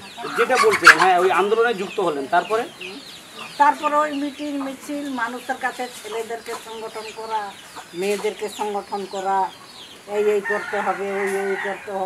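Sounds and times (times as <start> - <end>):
chickens clucking: 0.0 - 12.0.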